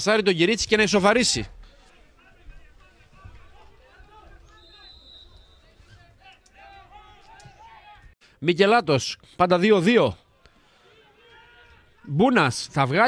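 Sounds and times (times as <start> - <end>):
distant players and spectators shouting: 0.4 - 8.2, 10.2 - 12.8.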